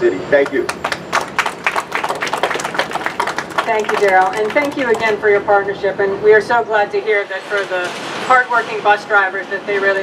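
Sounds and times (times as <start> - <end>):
small group applauding: 0.4 - 5.4.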